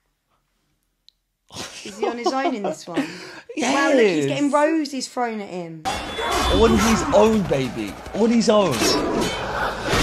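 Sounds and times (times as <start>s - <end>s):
person speaking: 1.6s - 4.8s.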